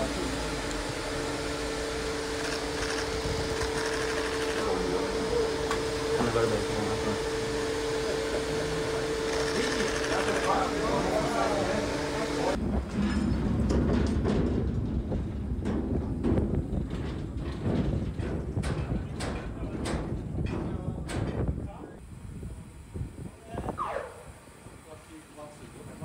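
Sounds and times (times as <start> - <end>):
mine cars rolling and clanking on rails: 12.6 - 21.6.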